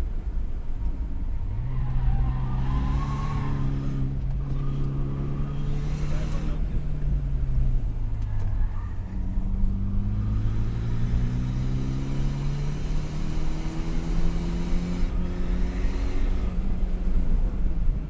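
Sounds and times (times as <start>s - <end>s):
road rumble: 0.0s - 18.0s
car engine from inside cabin: 2.6s - 18.0s.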